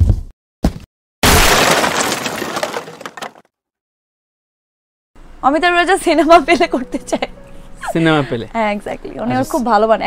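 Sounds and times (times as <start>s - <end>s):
debris rattling: 1.2s - 3.5s
wooden crate smashing: 1.2s - 3.5s.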